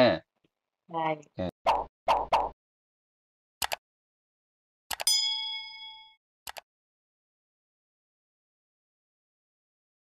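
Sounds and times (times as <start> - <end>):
notification bell ding: 5.0 - 6.2.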